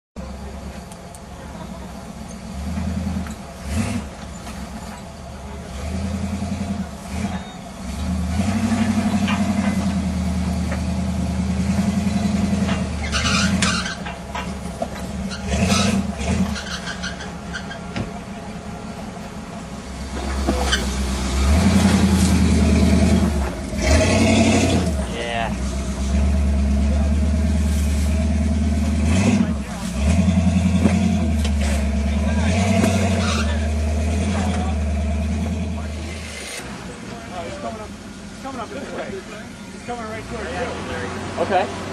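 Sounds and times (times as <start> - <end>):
car engine running at low revs: 0.2 - 41.9.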